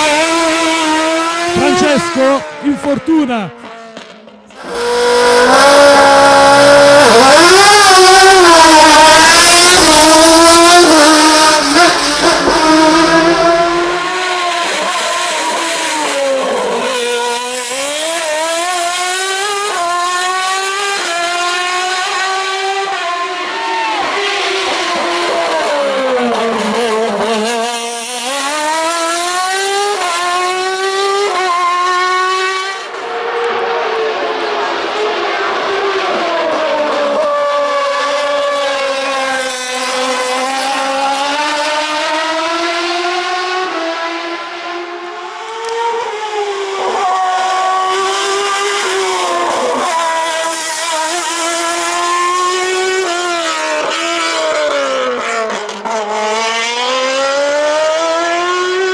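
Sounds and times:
sharp gear upshifts: 0.0s - 3.8s
race car engine accelerating: 0.0s - 58.9s.

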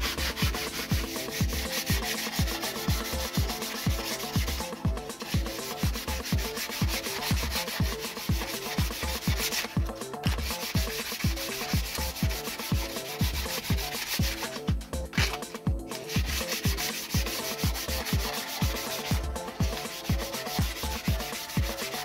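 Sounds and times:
background music with thumping beat: 0.0s - 22.0s
sandpaper rubbing wood: 0.0s - 22.0s.

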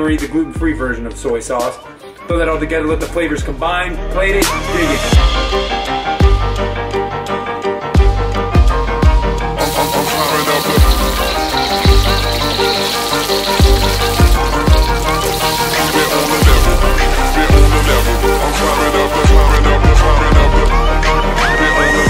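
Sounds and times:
food sizzling in hot oil: 9.6s - 20.0s
hip-hop beat with heavy bass: 13.6s - 20.6s.

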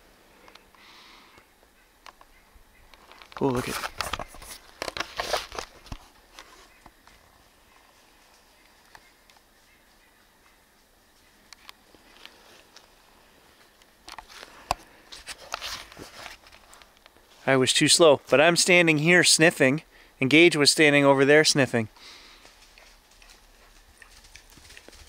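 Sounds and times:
faint forest ambience: 0.0s - 25.0s.

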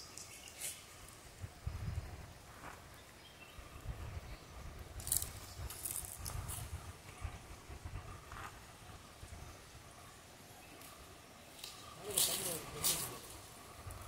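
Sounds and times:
birds chirping: 0.0s - 6.0s, 7.2s - 14.0s.

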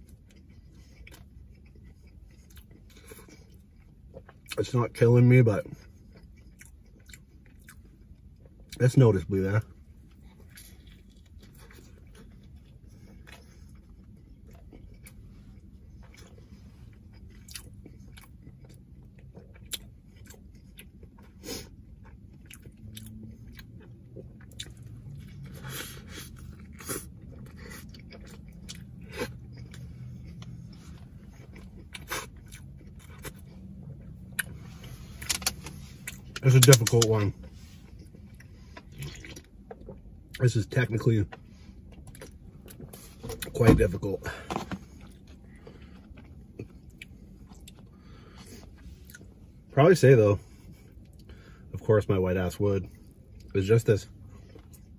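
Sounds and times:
chewing food: 0.0s - 49.6s, 52.8s - 54.9s.

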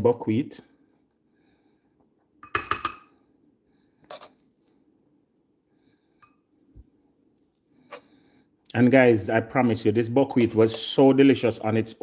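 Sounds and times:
metal spoon clinking on glass bowl: 2.4s - 3.2s.

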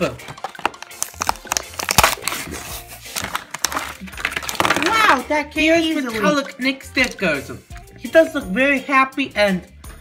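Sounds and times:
plastic packaging torn open: 0.2s - 5.2s.

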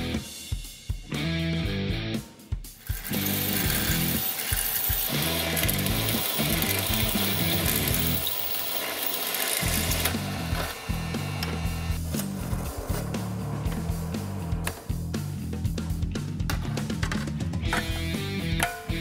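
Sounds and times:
background music with bass: 0.0s - 4.2s, 5.1s - 8.2s, 9.7s - 19.0s
drill press cutting metal: 2.8s - 12.0s.

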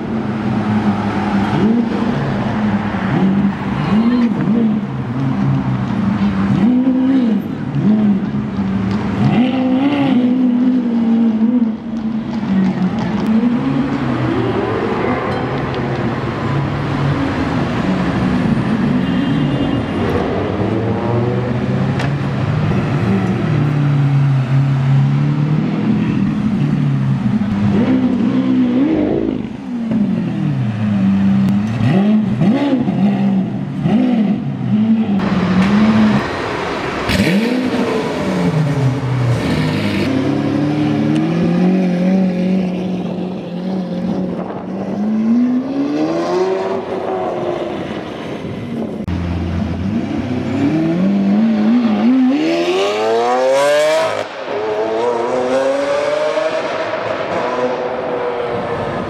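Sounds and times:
car engine revving and accelerating: 0.0s - 18.8s, 20.0s - 59.0s.

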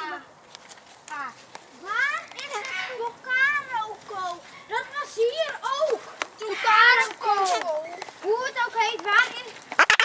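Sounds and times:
parrot chattering: 2.6s - 3.0s, 9.8s - 10.0s.

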